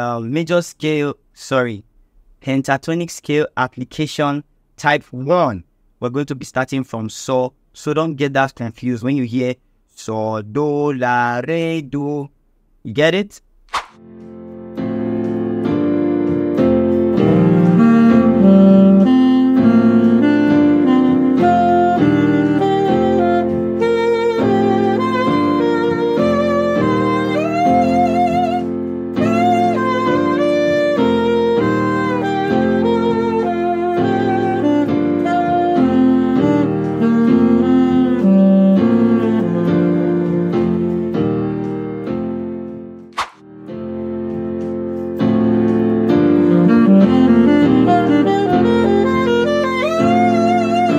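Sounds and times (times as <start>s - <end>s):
sustained keyboard chord: 14.0s - 50.9s
saxophone playing scale: 15.2s - 42.5s, 45.2s - 50.9s.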